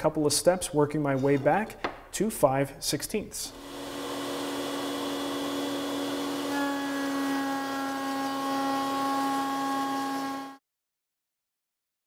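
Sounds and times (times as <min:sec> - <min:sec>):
router whining while cutting wood: 0:03.5 - 0:10.6.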